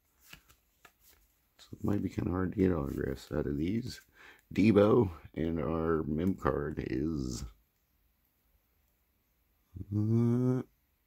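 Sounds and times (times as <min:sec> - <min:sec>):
trading cards flipped by hand: 0:00.1 - 0:02.0.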